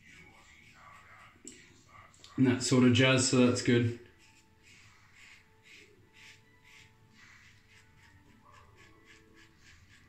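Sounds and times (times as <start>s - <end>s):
razor scraping stubble: 0.0s - 10.0s.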